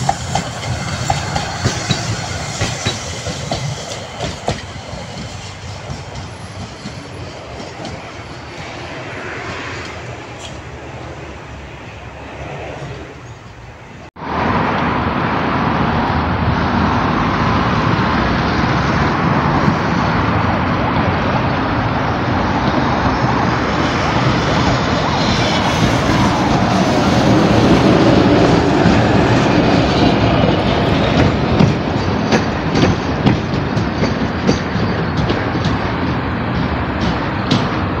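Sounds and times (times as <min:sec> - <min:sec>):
wheels clacking over rail joints: 0:00.0 - 0:10.8, 0:20.6 - 0:38.0
distant tram: 0:00.0 - 0:38.0
tram wheels rumbling on rail: 0:00.0 - 0:38.0.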